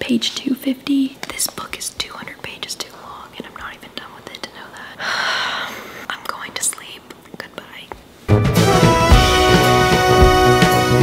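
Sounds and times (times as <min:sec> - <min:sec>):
woman whispering: 0:00.0 - 0:05.0, 0:06.0 - 0:08.0
music: 0:08.3 - 0:11.0.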